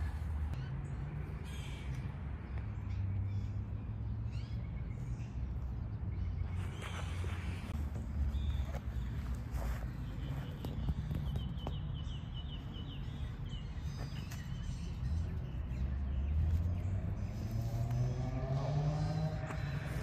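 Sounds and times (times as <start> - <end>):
bird chirping: 0.5 - 20.0.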